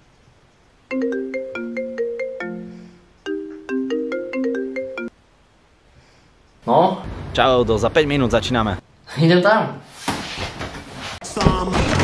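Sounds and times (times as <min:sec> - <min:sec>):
phone ringtone marimba melody: 0:00.9 - 0:05.2.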